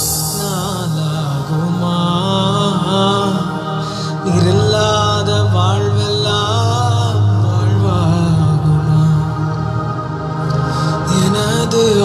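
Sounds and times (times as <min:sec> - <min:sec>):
man singing worship song: 0:00.0 - 0:09.7, 0:10.5 - 0:12.0
sustained low accompaniment: 0:00.0 - 0:12.0.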